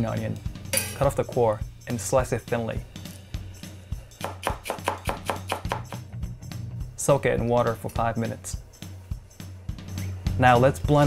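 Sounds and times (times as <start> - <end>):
background music: 0.0 - 11.0
knife chopping on wooden board: 4.2 - 6.0.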